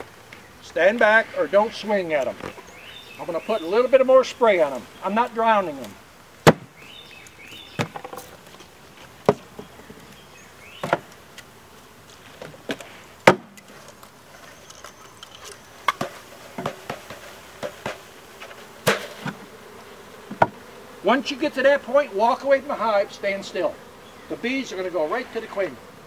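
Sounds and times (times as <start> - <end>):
bees buzzing: 0.0 - 26.0
knocks on wooden box: 6.4 - 6.7, 7.8 - 8.3, 10.8 - 11.0, 13.2 - 13.5, 20.3 - 20.6.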